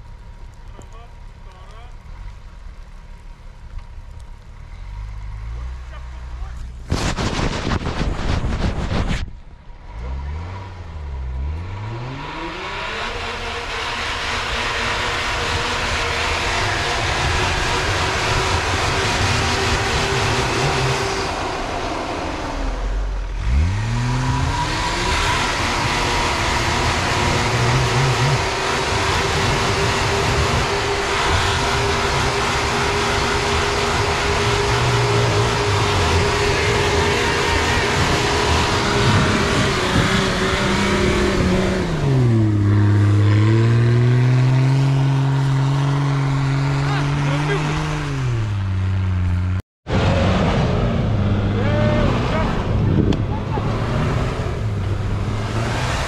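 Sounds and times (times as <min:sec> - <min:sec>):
engine revving under load: 0:04.6 - 0:56.0
burst of rough noise: 0:06.8 - 0:09.4, 0:23.4 - 0:48.6.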